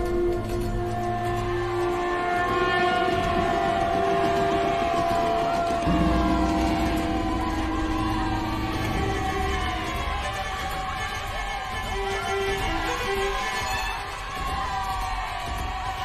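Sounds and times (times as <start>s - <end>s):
large gong struck: 3.1s - 10.3s.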